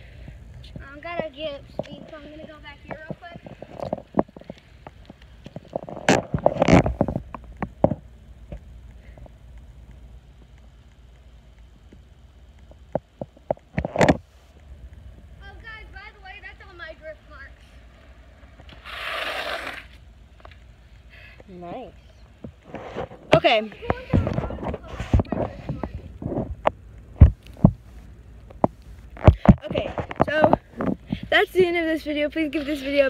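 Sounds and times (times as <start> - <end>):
bicycle tyre skidding on asphalt: 16.7 - 20.2.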